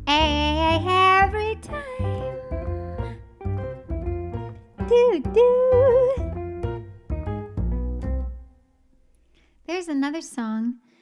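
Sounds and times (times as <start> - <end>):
instrumental accompaniment: 0.0 - 8.8.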